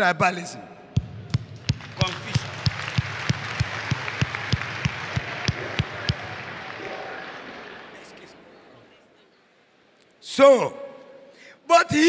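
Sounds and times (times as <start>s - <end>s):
loud rhythmic thumps: 1.0s - 6.5s
congregation applauding: 1.5s - 8.6s.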